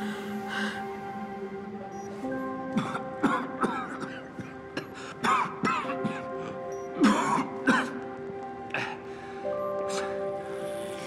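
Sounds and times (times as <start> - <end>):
background score sustained notes: 0.0 - 11.0
people coughing: 2.7 - 6.3, 7.0 - 8.0.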